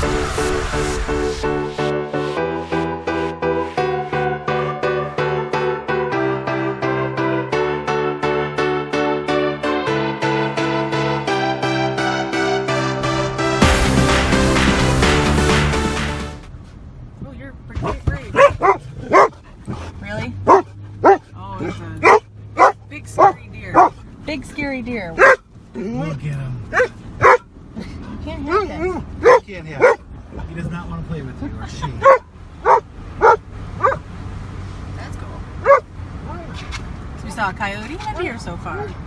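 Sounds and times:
car cabin low hum: 16.4s - 39.0s
dog barking: 18.3s - 19.4s, 20.4s - 24.0s, 25.2s - 25.4s, 26.7s - 27.5s, 28.5s - 30.0s, 32.0s - 34.0s, 35.6s - 35.9s.

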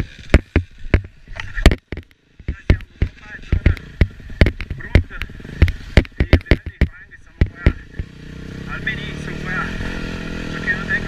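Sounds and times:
motorcycle engine popping: 0.0s - 9.0s.

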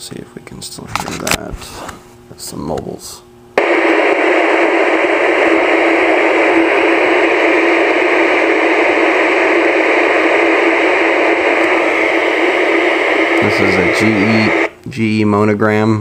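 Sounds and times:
radio receiver hiss: 3.6s - 14.8s.

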